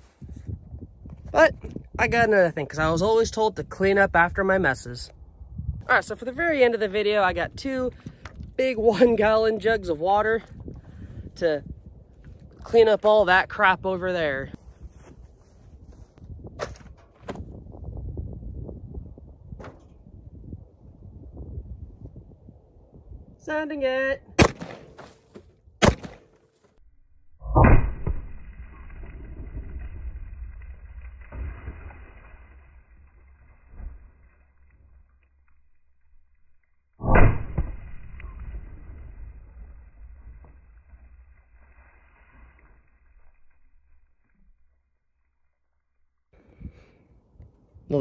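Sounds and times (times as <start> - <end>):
gunshots: 24.4 - 25.1, 25.8 - 26.4
deep muffled booms: 37.0 - 41.2.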